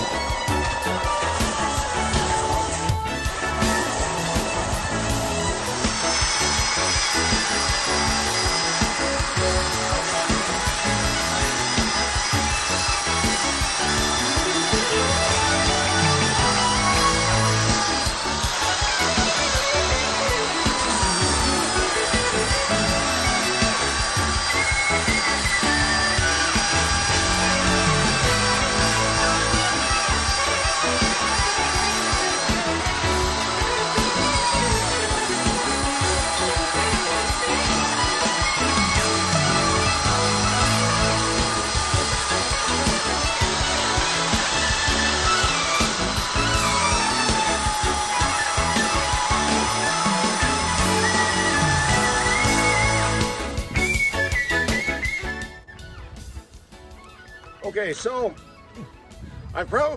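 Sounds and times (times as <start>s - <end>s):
belt sander sanding wood: 0.0s - 55.3s
background music: 0.0s - 59.9s.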